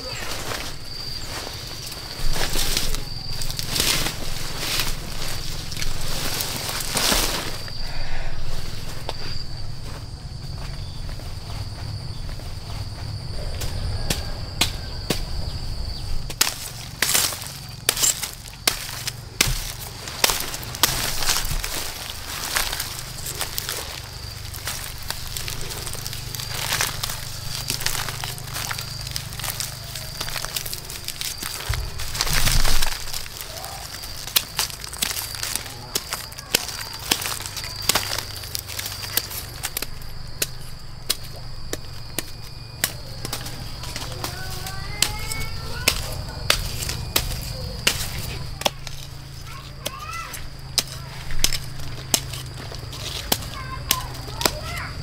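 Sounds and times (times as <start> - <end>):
dry stems crackling and snapping: 0.0 - 7.8, 13.6 - 55.0
high insect trill: 0.0 - 55.0.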